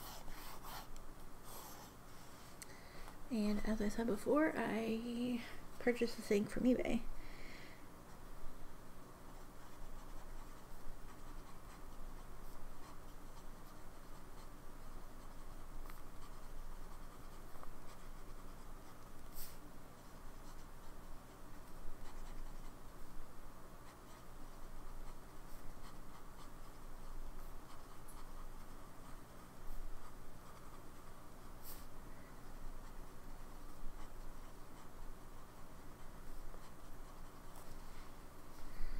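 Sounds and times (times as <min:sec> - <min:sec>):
pen nib scratching on paper: 0:00.0 - 0:02.0, 0:09.3 - 0:23.1, 0:23.7 - 0:37.8.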